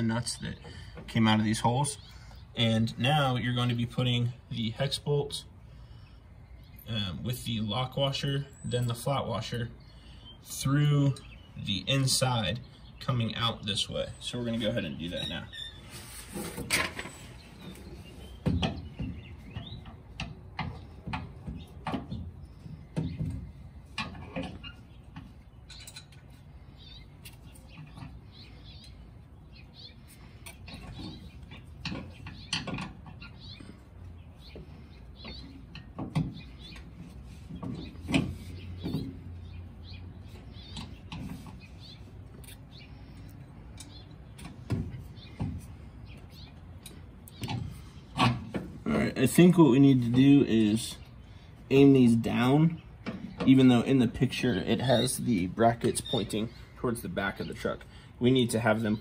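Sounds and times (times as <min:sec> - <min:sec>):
metal hardware clicking and knocking: 0:23.0 - 0:26.3.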